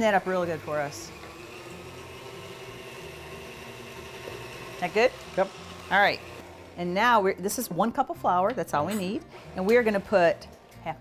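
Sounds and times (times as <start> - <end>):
electric stand mixer running: 0.0 - 7.2, 9.3 - 10.6.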